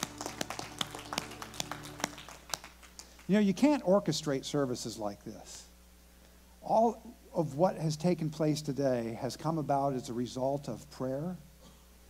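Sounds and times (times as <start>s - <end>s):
congregation applauding: 0.0s - 3.8s.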